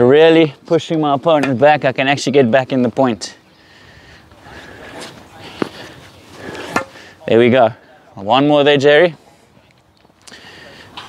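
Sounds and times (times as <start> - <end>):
racket hitting tennis ball: 6.6 - 7.0.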